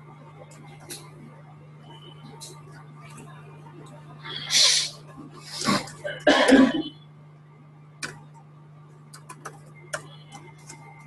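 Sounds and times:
person coughing: 5.8 - 6.9.

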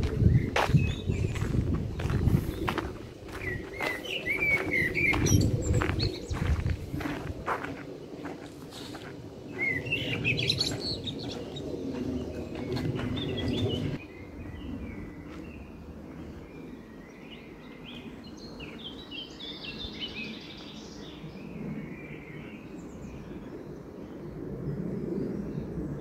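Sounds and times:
footsteps on gravel: 0.0 - 14.0
songbirds chirping: 0.0 - 26.0.

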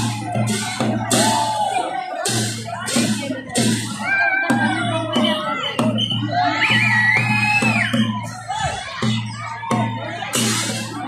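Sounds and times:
drum-led music: 0.0 - 11.0
large crowd noise: 0.0 - 11.0.

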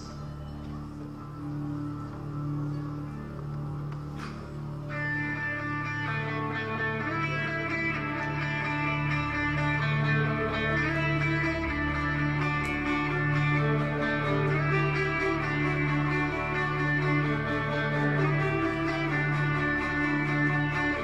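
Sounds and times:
electric guitar ringing notes: 0.0 - 21.0
steady low drone: 0.0 - 21.0.

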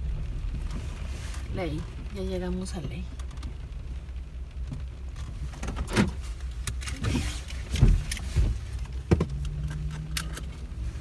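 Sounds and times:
car engine hum: 0.0 - 11.0.

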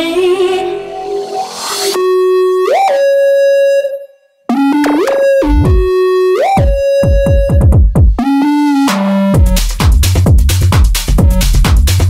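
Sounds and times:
buzzy synthesizer note sliding up: 4.5 - 6.7.

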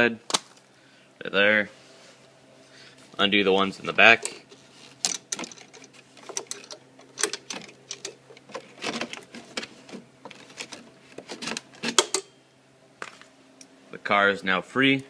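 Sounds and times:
metal hooks clicking and rattling: 5.0 - 9.7.

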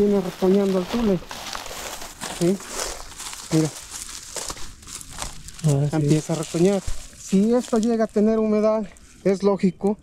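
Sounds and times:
dry stalks crunching underfoot: 0.0 - 9.4.

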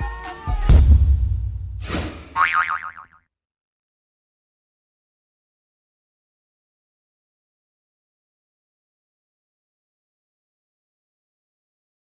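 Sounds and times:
cartoon boing sound effect: 2.4 - 3.2.

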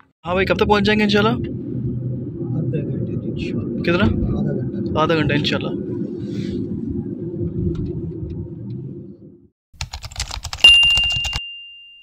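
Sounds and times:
car road noise rumble: 0.0 - 9.6
bright bell ding: 10.7 - 12.0.

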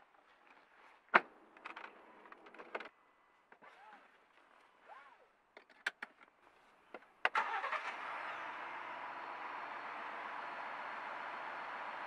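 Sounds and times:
car engine starting and running: 7.3 - 12.0.

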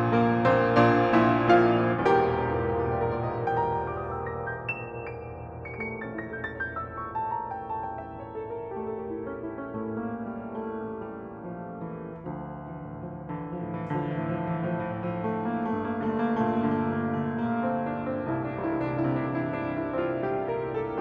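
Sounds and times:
upright piano playing: 0.0 - 21.0.

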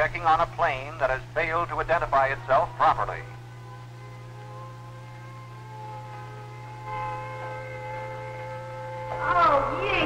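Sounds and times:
low steady hum: 0.0 - 10.0
siren steady alert tone: 2.5 - 10.0.

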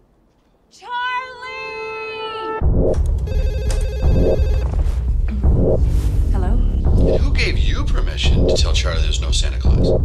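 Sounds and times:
old telephone ringing: 3.3 - 4.6
dark bass-heavy music: 4.0 - 10.0.

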